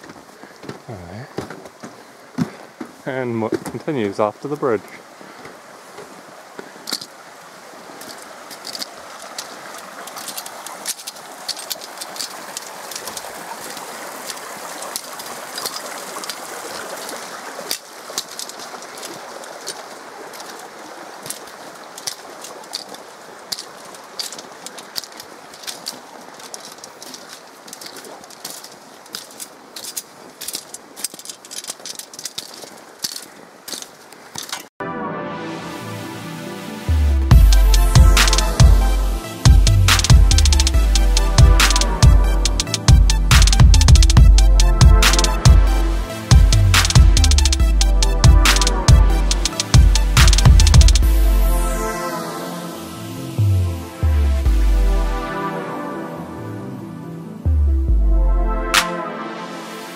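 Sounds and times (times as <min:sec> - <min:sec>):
footsteps on metal bridge treads: 0:00.0 - 0:34.7, 0:39.5 - 0:51.1
running water rushing: 0:00.0 - 0:57.6, 0:58.6 - 0:59.9.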